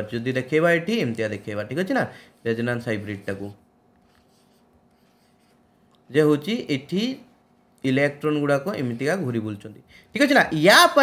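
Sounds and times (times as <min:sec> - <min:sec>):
low room hum: 0:00.0 - 0:11.0
stylus scratching on pen tablet: 0:02.4 - 0:05.7.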